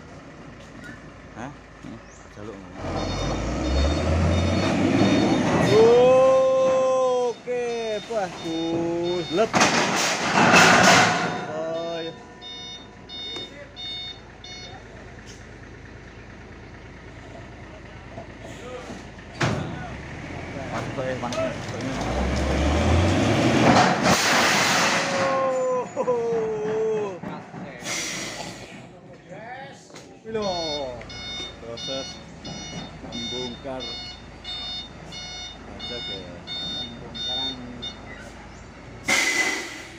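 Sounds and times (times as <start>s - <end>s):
truck warning beeps: 2.0s - 16.4s, 30.2s - 39.9s
steel beams clanking: 7.4s - 14.0s, 20.8s - 28.9s, 39.0s - 39.9s
steel beams scraping crash: 9.5s - 11.8s, 23.5s - 25.3s, 39.0s - 39.9s.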